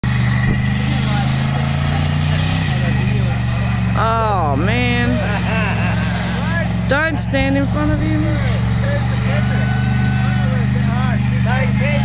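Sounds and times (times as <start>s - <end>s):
car engine at high revs: 0.0s - 12.0s.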